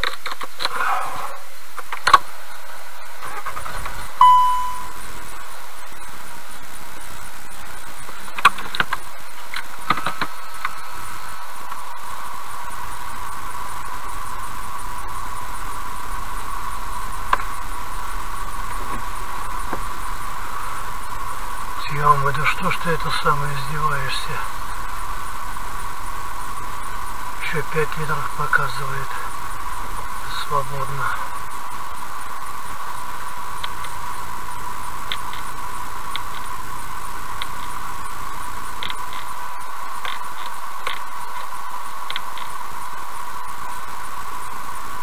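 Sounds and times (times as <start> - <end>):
short beep: 4.2 - 5.0.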